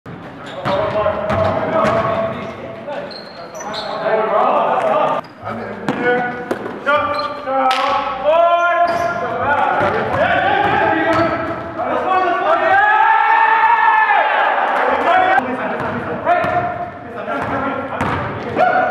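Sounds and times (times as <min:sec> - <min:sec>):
players' voices echoing: 0:00.1 - 0:18.9
basketball bouncing on hardwood floor: 0:17.4 - 0:18.4.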